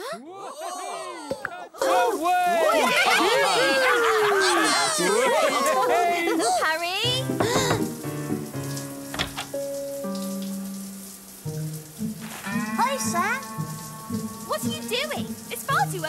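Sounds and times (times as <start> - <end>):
shower running: 1.8 - 16.0
cartoon music score: 12.3 - 16.0.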